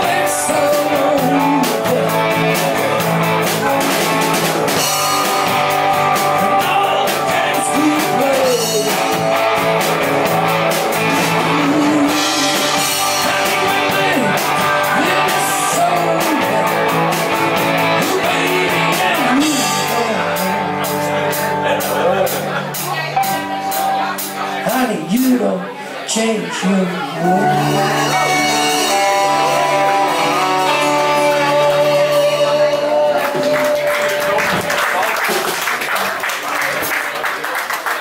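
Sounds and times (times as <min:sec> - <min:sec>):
drum kit beat: 0:00.0 - 0:25.5, 0:27.4 - 0:35.9
electric and acoustic guitars: 0:00.0 - 0:36.9.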